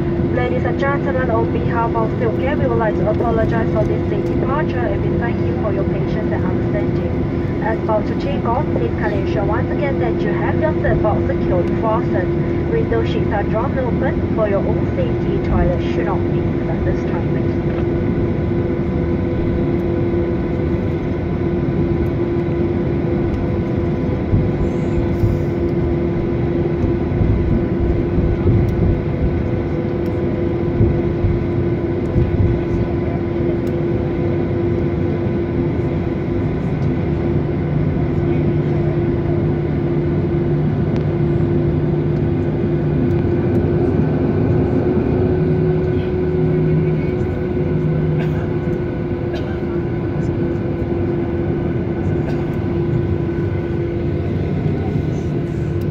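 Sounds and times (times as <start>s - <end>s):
constant engine whine: 0.0s - 55.9s
deeper hum: 0.0s - 55.9s
jet engine hum and rumble: 0.0s - 55.9s.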